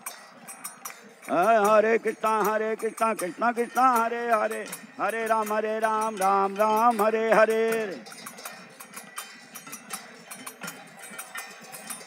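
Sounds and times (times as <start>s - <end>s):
metal percussion ringing strikes: 0.0s - 12.0s.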